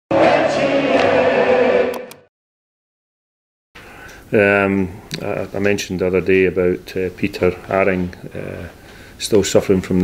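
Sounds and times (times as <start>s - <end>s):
sustained choir-like voices: 0.1s - 2.3s.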